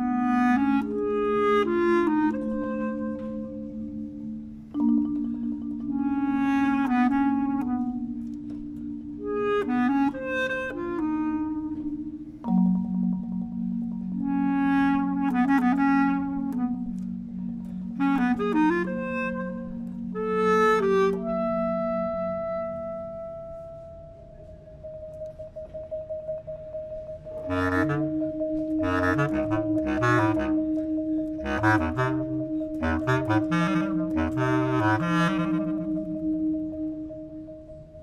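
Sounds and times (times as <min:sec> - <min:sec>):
bass clarinet: 0:00.0 - 0:38.0
marimba: 0:00.0 - 0:38.0.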